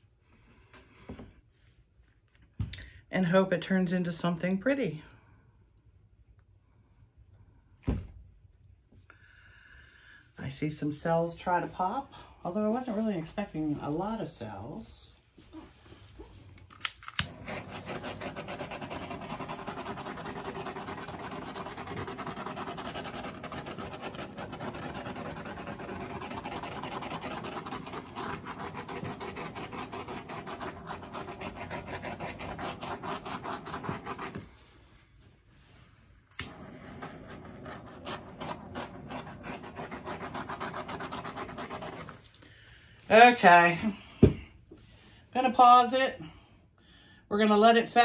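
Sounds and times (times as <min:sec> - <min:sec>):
butane torch clicking alight: 0:16.6 - 0:20.1, 0:36.3 - 0:40.0
torch flame hissing: 0:17.2 - 0:34.5, 0:36.3 - 0:42.3.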